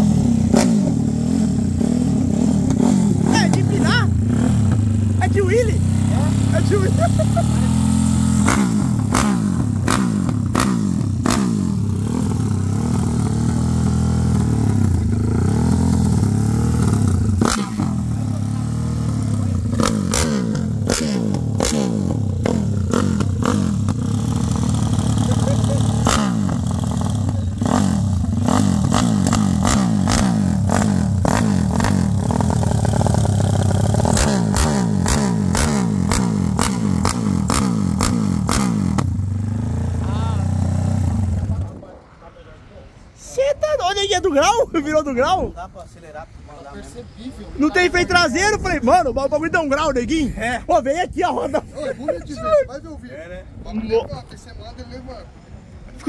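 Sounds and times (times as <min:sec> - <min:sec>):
motorcycle engine revving: 0:00.0 - 0:42.0.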